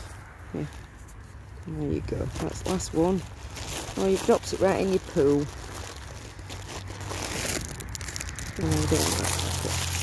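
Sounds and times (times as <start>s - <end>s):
crinkling rustling noise: 0.0s - 10.0s.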